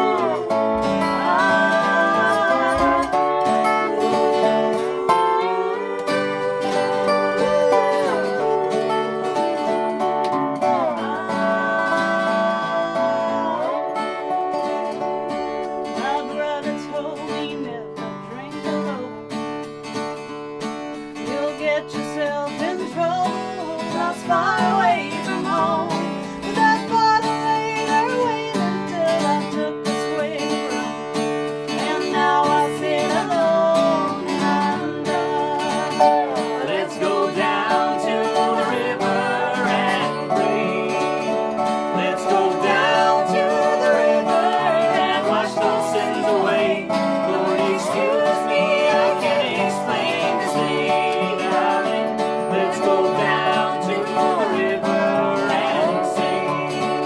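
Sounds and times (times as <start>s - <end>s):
women singing: 0.0s - 19.2s, 21.2s - 31.1s, 31.7s - 57.0s
acoustic guitar strummed: 0.0s - 57.0s
slide resonator guitar: 0.0s - 57.0s.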